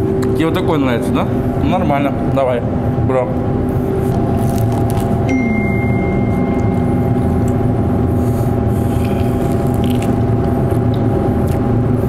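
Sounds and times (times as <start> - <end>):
extractor hood fan humming: 0.0 - 12.0.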